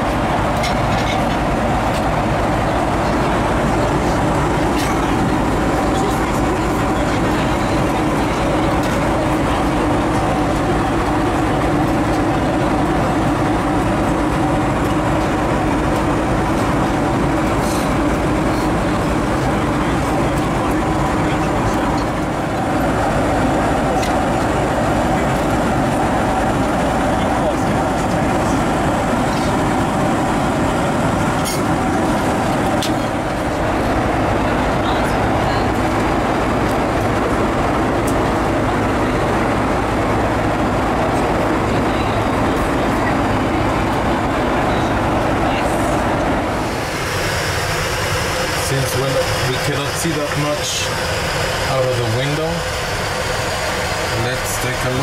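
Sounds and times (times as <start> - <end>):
airplane cabin noise: 0.0 - 55.0.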